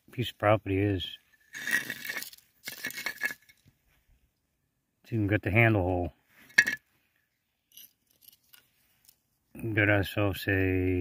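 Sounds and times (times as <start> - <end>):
metal scraping clinks on rock: 1.0 - 3.7, 6.4 - 6.9, 7.6 - 9.2.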